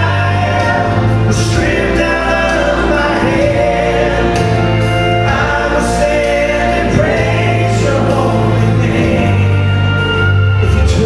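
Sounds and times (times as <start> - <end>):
accompaniment with bass line: 0.0 - 11.0
vocal trio singing in harmony: 0.0 - 11.0.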